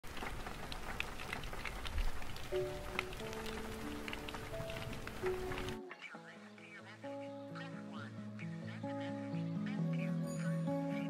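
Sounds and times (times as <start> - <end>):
raindrops ticking on glass: 0.0 - 6.8
steady rain hiss: 0.0 - 11.0.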